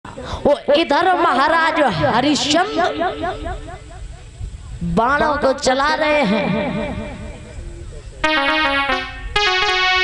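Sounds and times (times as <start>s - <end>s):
keyboard instrument melody: 8.2s - 10.0s.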